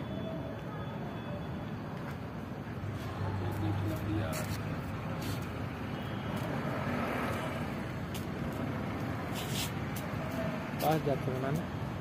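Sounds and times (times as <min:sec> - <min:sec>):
distant traffic rumble: 0:00.0 - 0:12.0.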